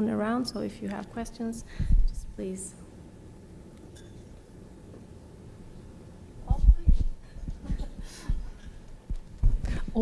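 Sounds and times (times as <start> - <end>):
microphone handling thumps: 9.1 - 10.0.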